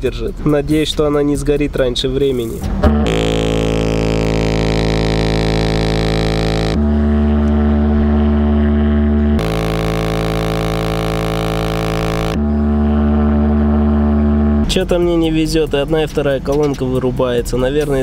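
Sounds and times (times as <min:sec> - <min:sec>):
speaker playing held bass notes: 0:02.6 - 0:15.4.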